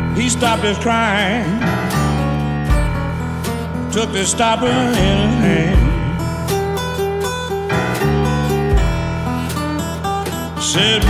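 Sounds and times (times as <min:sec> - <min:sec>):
electric blues band playing: 0:00.0 - 0:11.0.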